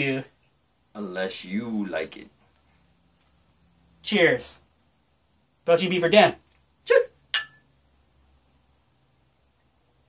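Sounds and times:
glasses clinking: 7.3s - 7.7s.

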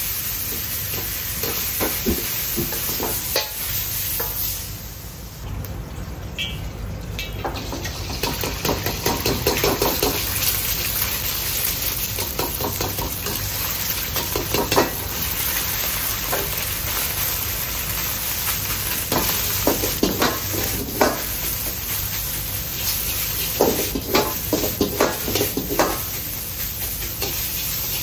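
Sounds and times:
food sizzling in hot oil: 0.0s - 5.5s, 7.2s - 28.0s.

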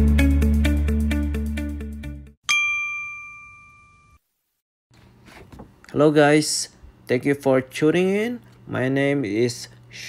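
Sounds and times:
bell-like chime: 2.5s - 4.2s.

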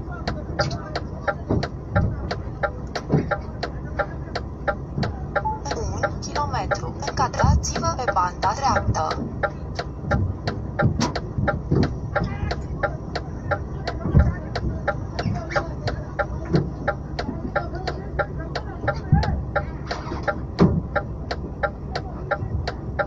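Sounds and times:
dull thumps: 0.0s - 23.0s
rapid ticking of indicator relay: 0.0s - 23.0s
truck engine idling: 0.0s - 23.0s.

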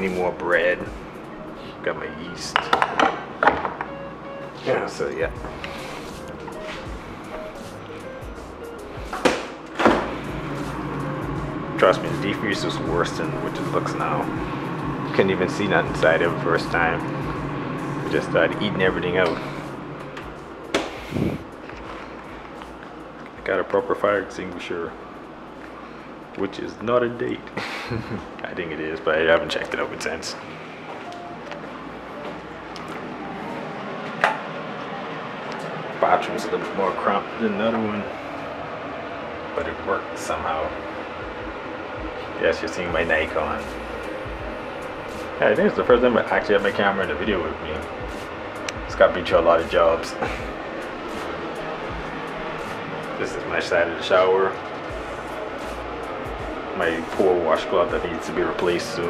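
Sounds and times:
soft background music: 0.0s - 59.0s
room hiss: 3.2s - 30.9s, 31.8s - 59.0s.

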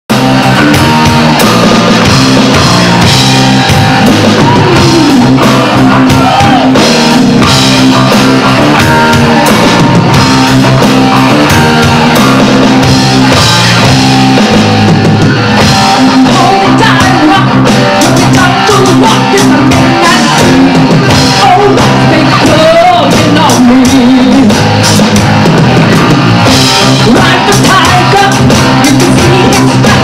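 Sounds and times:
electric guitar: 0.1s - 30.0s
electronic drum kit beat: 0.1s - 30.0s.

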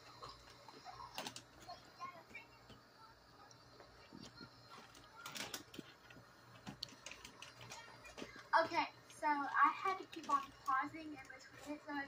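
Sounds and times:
faint clicks and taps: 0.0s - 12.0s.

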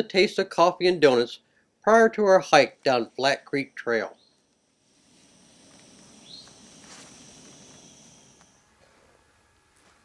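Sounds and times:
high-pitched insect drone: 3.2s - 9.2s
bird chirp: 4.1s - 4.5s, 6.1s - 6.7s.

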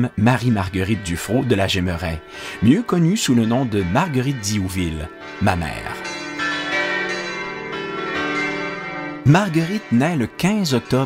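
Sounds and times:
bells ringing: 2.6s - 11.0s.

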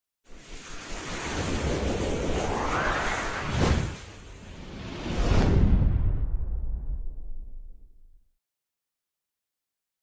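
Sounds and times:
rushing whoosh: 0.3s - 7.1s.

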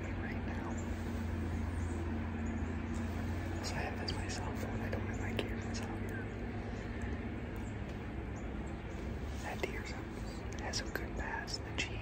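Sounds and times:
man whispering: 0.0s - 1.5s, 3.4s - 6.5s, 9.3s - 12.0s
steady low hum: 0.0s - 12.0s.

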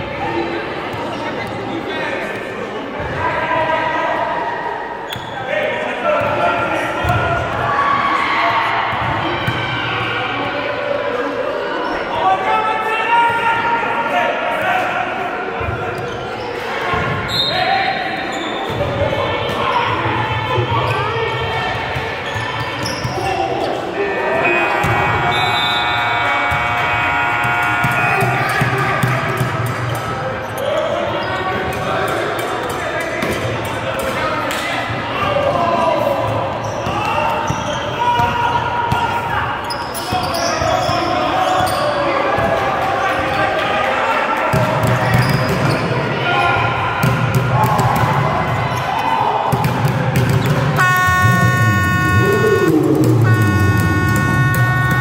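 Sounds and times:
players calling out: 22.2s - 31.8s, 47.4s - 55.0s
basketball bouncing on court: 49.5s - 55.0s
held pitched tone: 50.8s - 55.0s.

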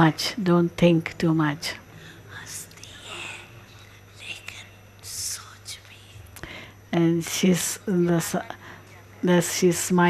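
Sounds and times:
steady low hum: 0.0s - 10.0s
whispery speech: 0.0s - 10.0s.

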